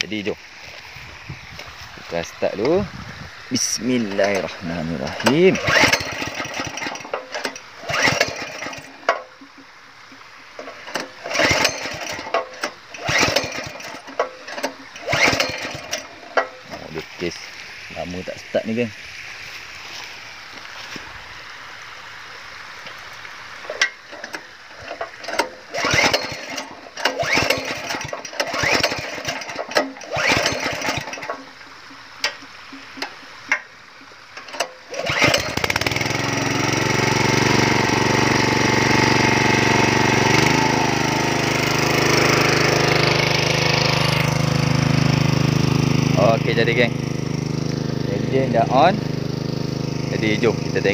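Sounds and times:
small petrol engine starting: 3.9 - 9.6, 10.6 - 17.0, 23.7 - 31.6, 34.4 - 50.9.

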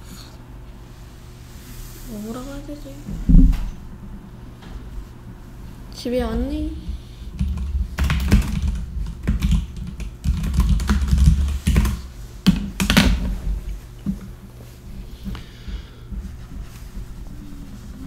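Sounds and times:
typing on computer keyboard: 7.4 - 13.0.

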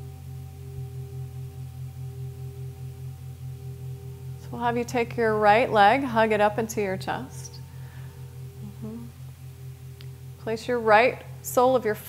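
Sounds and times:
ambient drone music: 0.0 - 12.0.

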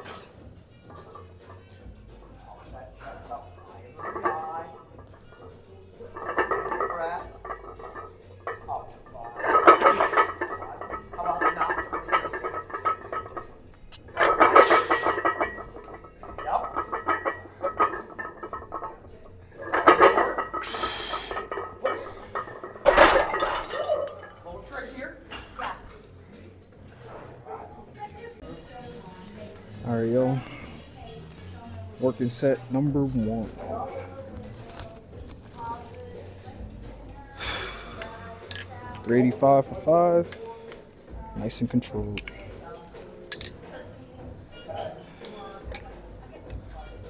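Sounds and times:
background music: 0.0 - 47.0
metallic clinks of weight plates: 3.8 - 24.4, 43.2 - 43.8.

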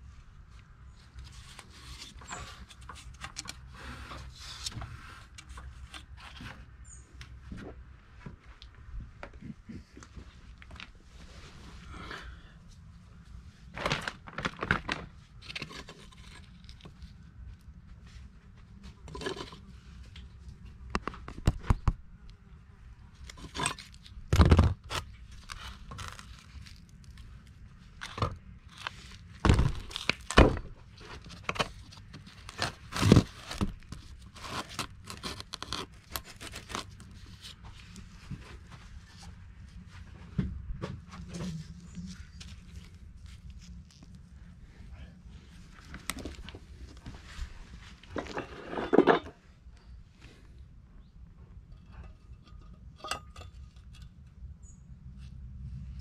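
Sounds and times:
metal scraping: 48.2 - 49.4.

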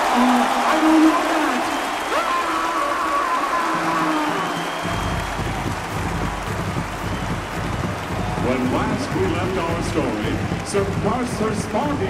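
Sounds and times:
stadium crowd noise: 0.0 - 12.0
marching band music: 4.8 - 12.0.

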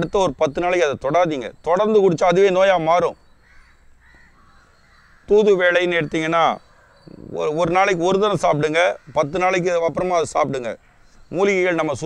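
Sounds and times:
crows cawing faintly: 3.2 - 12.0.

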